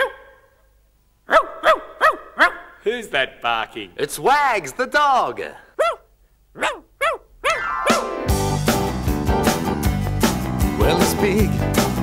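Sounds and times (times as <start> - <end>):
dog barking: 0.0 - 0.6, 1.3 - 2.8, 5.8 - 7.7.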